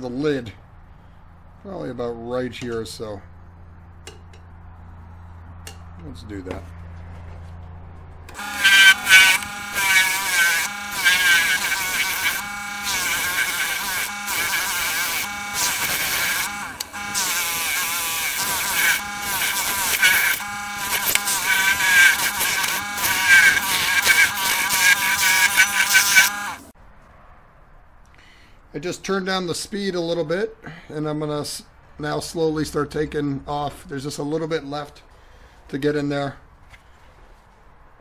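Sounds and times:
lathe motor humming: 0:08.3 - 0:26.7
lathe tool scraping with squeal: 0:08.4 - 0:26.6.

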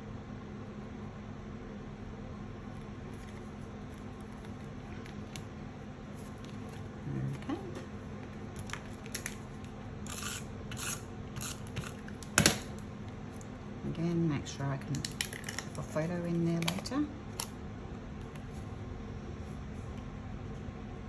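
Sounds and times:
woman murmuring: 0:07.0 - 0:07.8.

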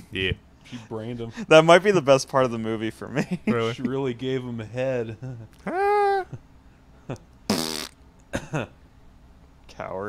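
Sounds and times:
men laughing: 0:03.1 - 0:04.2, 0:04.9 - 0:07.3, 0:08.3 - 0:08.8.

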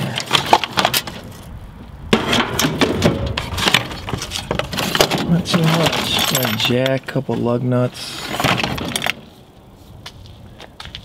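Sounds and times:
metal parts clinking: 0:02.2 - 0:07.0.

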